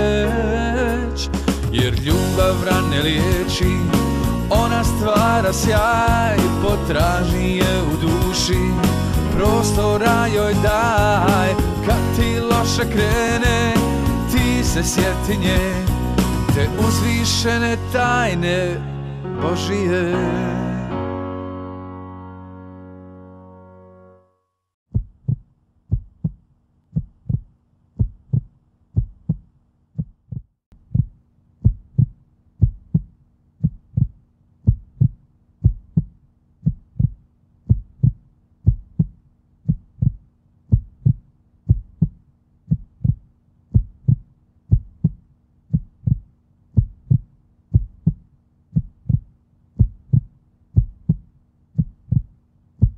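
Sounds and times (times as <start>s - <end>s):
heartbeat-like low thumps: 24.9s - 52.9s.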